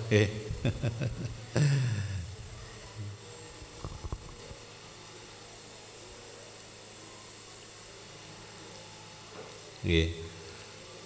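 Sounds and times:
low electrical hum: 0.0s - 11.0s
steady hiss: 0.0s - 11.0s.

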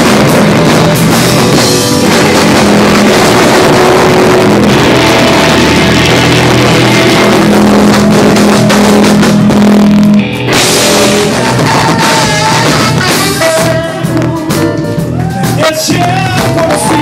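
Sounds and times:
bass guitar: 0.0s - 17.0s
drums: 0.0s - 17.0s
electric guitars: 0.0s - 17.0s.

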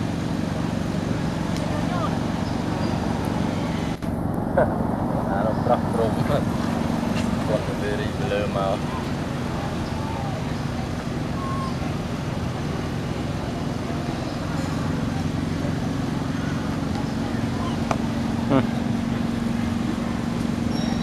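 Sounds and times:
engine humming: 0.0s - 21.0s
faint voices: 0.0s - 21.0s.

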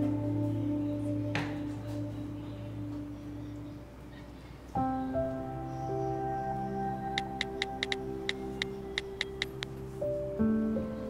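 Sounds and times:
soft background music: 0.0s - 11.0s
touchscreen keyboard taps: 7.2s - 8.4s.

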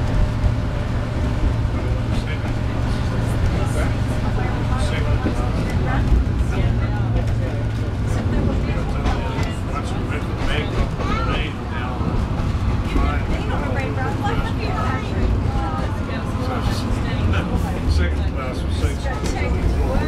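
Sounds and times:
rail car engine drone: 0.0s - 20.0s
wheels on rail: 0.0s - 20.0s.

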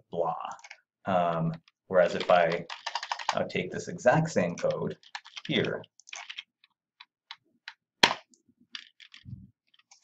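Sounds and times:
keyboard keys clicking: 2.1s - 3.4s.

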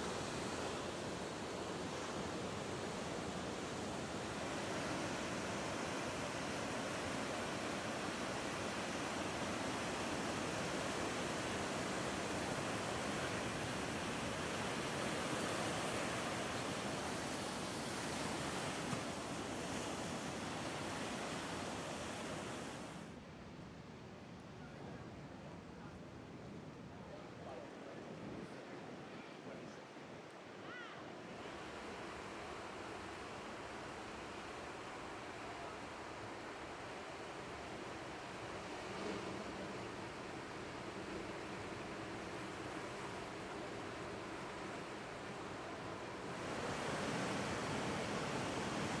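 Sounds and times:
ocean waves breaking: 0.0s - 23.0s, 31.3s - 49.0s.

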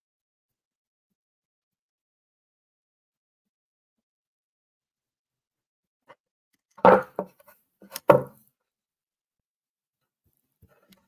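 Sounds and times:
wooden panel knocking on tabletop: 6.8s - 8.4s.

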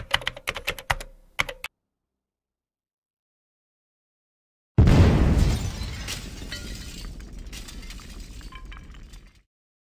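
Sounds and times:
glass shattering crash: 4.8s - 9.5s
tinkling falling glass shards: 5.8s - 9.3s.

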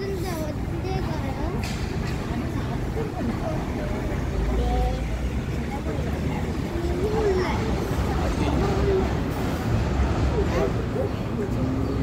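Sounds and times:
faint voices: 0.0s - 12.0s
traffic rumble: 0.0s - 12.0s
heavy vehicle passing: 3.3s - 12.0s.

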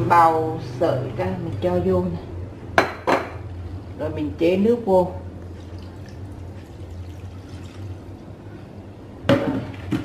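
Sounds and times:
water pouring into saucepan: 5.6s - 8.3s.

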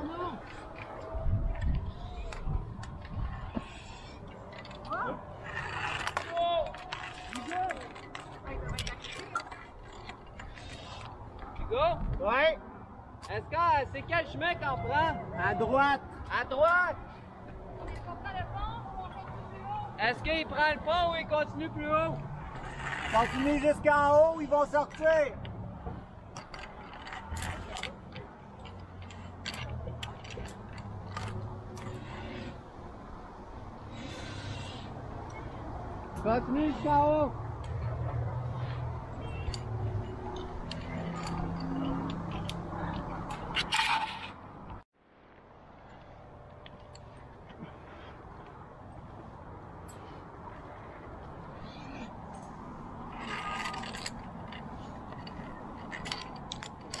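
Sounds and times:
climbing gear clanking on steel: 1.6s - 11.2s, 26.3s - 32.7s, 36.2s - 44.8s, 51.6s - 57.0s.

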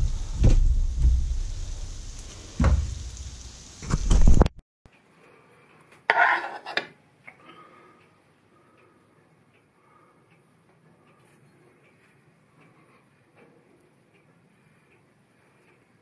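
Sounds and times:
butter sizzling: 0.0s - 4.4s, 6.1s - 6.9s
metal spoon scraping a plate: 6.1s - 7.0s
metal tongs scraping in a wok: 6.1s - 7.0s.

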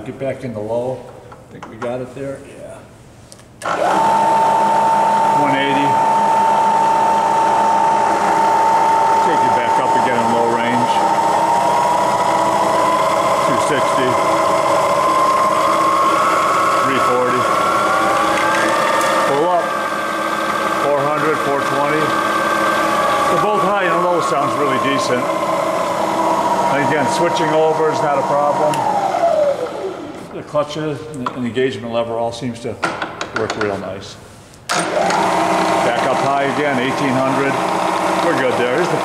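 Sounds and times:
milling machine motor whine: 3.6s - 30.3s, 34.8s - 39.0s.

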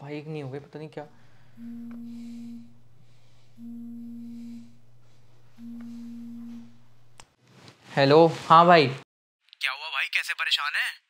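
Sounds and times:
faint steady hum: 1.0s - 7.3s
phone low buzzing tones: 1.1s - 7.2s.

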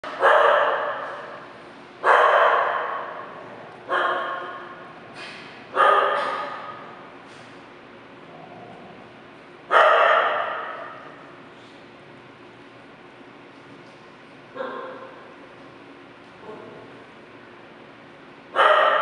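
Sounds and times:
dog barking: 0.1s - 1.3s, 2.0s - 3.3s, 3.9s - 4.8s, 5.7s - 6.8s, 9.7s - 11.0s, 14.6s - 15.1s, 18.6s - 19.0s.

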